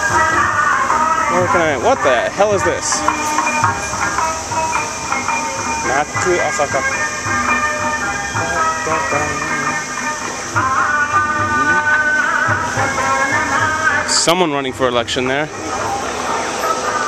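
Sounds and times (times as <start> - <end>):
festival music: 0.0 - 17.0
held steady tones: 0.0 - 17.0
wavering singing voice: 0.0 - 17.0.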